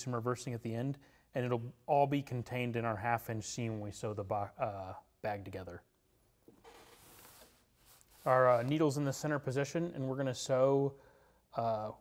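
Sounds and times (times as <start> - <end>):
canvas fabric rustling: 6.6 - 8.9.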